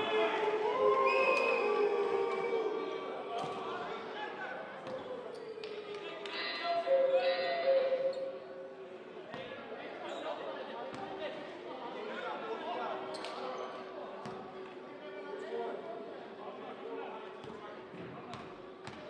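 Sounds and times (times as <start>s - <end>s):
voices echoing in a hall: 0.0s - 19.0s.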